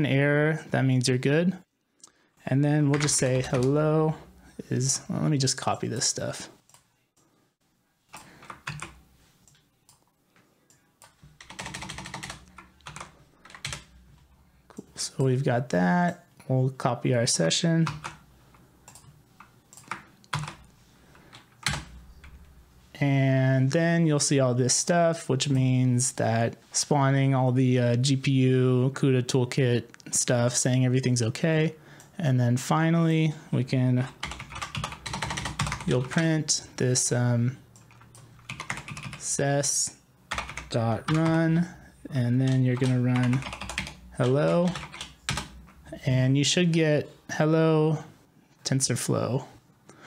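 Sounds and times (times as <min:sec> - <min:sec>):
computer keyboard typing: 0:08.1 - 0:10.1, 0:11.0 - 0:13.9, 0:17.8 - 0:18.2, 0:18.8 - 0:22.4, 0:34.1 - 0:36.2, 0:37.8 - 0:39.2, 0:40.3 - 0:41.4, 0:42.5 - 0:45.8.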